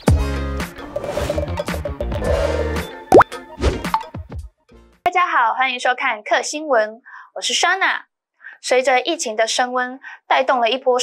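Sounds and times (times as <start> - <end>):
cartoon pop sound effects: 3.1 - 4.1.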